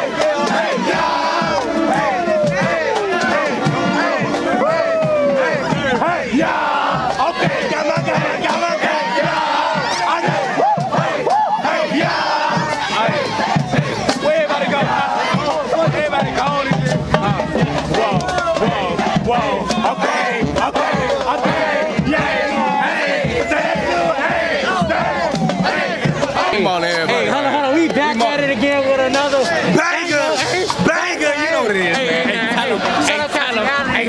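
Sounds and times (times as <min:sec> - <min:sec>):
men yelling and chanting: 0:00.0 - 0:34.0.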